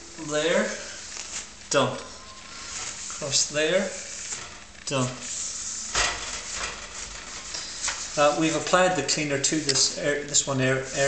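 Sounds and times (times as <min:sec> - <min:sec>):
paper towel rubbing on metal: 0:00.2 - 0:11.0.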